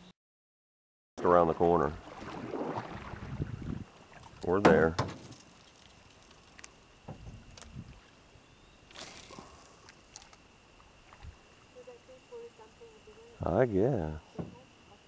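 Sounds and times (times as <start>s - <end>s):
faint high-pitched hum: 1.2s - 15.0s.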